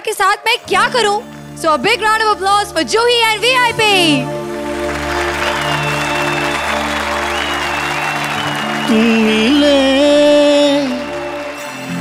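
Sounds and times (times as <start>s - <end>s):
song instrumental intro: 0.7s - 12.0s
audience applauding: 1.2s - 1.6s, 4.3s - 12.0s
person singing: 8.6s - 12.0s.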